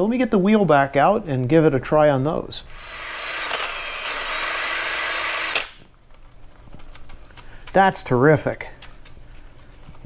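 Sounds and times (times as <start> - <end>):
faint motor hum: 1.1 - 10.0
drill eraser wheel abrasive hiss: 2.7 - 5.7.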